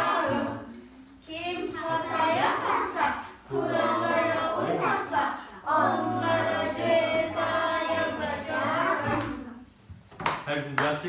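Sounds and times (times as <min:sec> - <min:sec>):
children singing together: 0:00.0 - 0:09.7.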